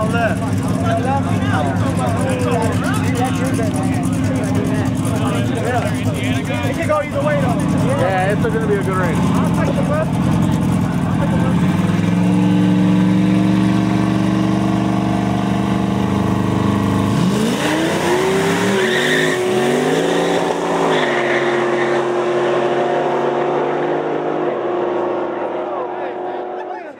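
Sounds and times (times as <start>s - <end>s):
race car engines revving: 0.0s - 26.9s.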